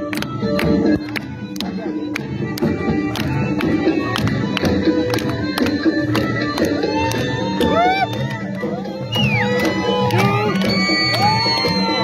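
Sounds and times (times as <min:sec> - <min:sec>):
drum beating steadily: 0:00.0 - 0:12.0.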